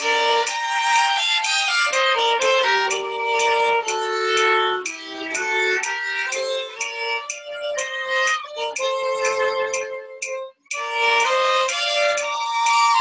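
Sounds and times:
bowed string duet waltz: 0:00.0 - 0:13.0.

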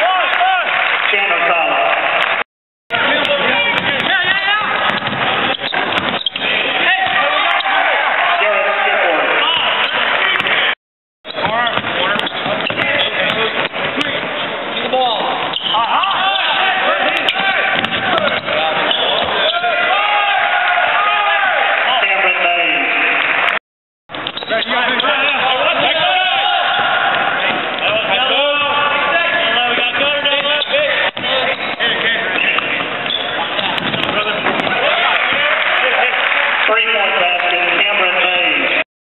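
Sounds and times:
sneakers squeaking: 0:03.0 - 0:07.9, 0:09.4 - 0:10.7, 0:11.3 - 0:19.9, 0:24.1 - 0:35.4
basketball bouncing: 0:03.1 - 0:07.6, 0:11.3 - 0:16.4, 0:17.0 - 0:19.8, 0:25.7 - 0:28.3, 0:29.6 - 0:35.5.

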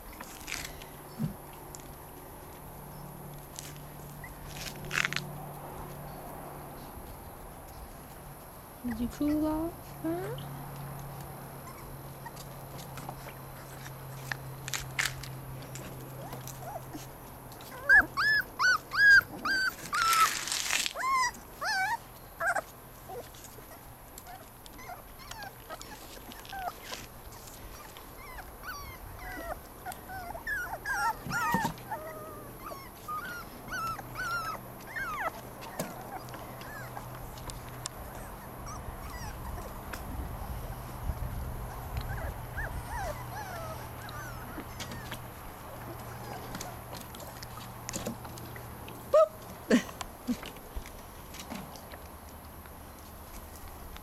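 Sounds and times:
puppies whimpering and yipping: 0:03.9 - 0:05.0, 0:11.6 - 0:14.3, 0:15.7 - 0:47.8.

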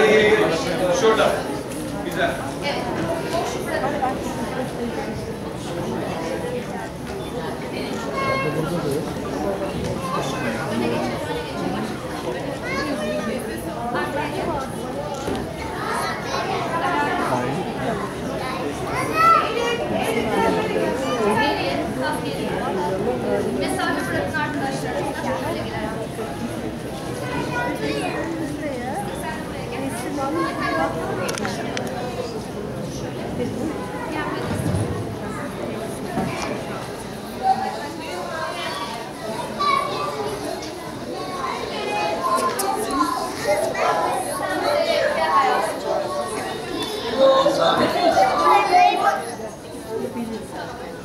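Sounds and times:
children chattering and calling out: 0:00.0 - 0:51.0.

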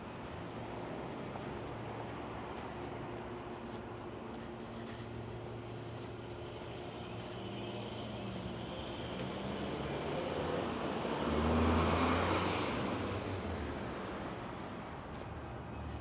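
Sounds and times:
murmur of distant traffic: 0:00.0 - 0:16.0
car driving past: 0:09.7 - 0:13.8.

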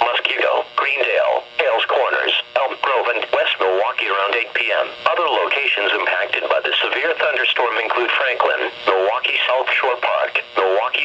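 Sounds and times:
weather radio voice through small speaker: 0:00.0 - 0:11.0.

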